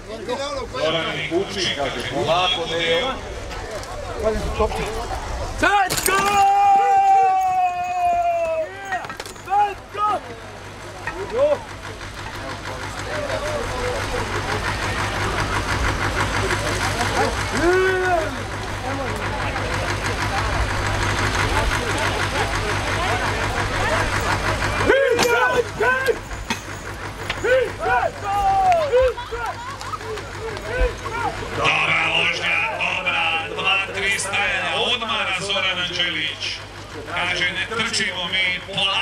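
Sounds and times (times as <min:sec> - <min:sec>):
pulsing mechanical rumble: 0:00.0 - 0:05.8, 0:06.6 - 0:39.0
people shouting at horses: 0:05.6 - 0:10.3, 0:17.2 - 0:18.4, 0:24.8 - 0:26.2, 0:27.3 - 0:31.6.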